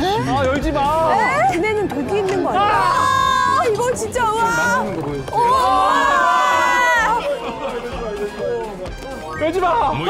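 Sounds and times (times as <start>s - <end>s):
background music: 0.0s - 10.0s
people chattering and exclaiming: 0.0s - 10.0s.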